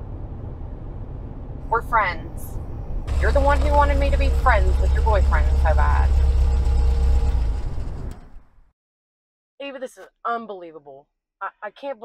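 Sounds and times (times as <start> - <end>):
car driving away: 2.4 - 8.7.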